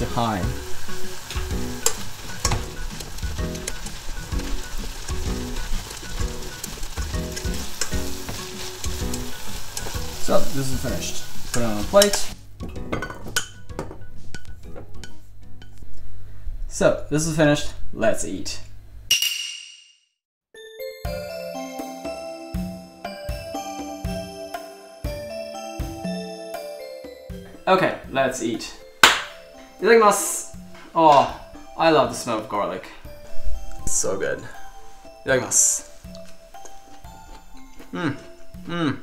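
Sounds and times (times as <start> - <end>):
vegetables sizzling in a pan: 0.0 - 12.4
soft background music: 0.0 - 17.4, 20.6 - 39.0.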